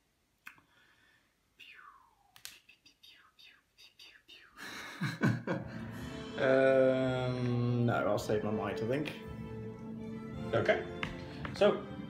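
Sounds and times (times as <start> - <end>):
man whispering: 1.5 - 4.6
breathy sound: 5.6 - 7.2.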